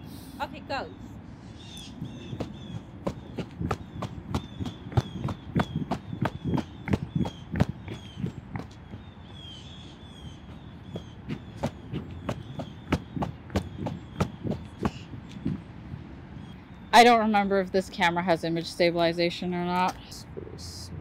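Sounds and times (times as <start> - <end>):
bird chirping: 0.8 - 15.6
footsteps on paved path: 2.0 - 15.6.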